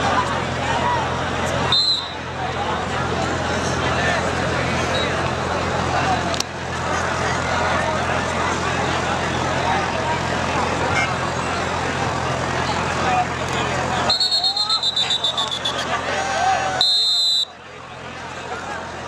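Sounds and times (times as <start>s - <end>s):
crowd babble: 0.0s - 19.0s
referee's whistle trilling: 1.7s - 2.2s, 14.1s - 15.9s, 16.8s - 17.5s.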